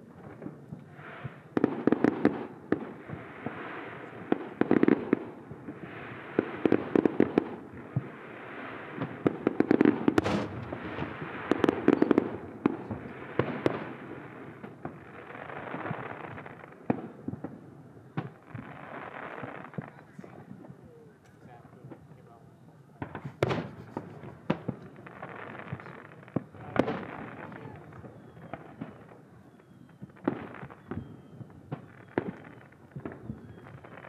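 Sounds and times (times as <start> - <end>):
firework bangs: 0.0 - 20.8, 23.0 - 29.2, 29.8 - 34.0
crackling hiss: 0.0 - 34.0.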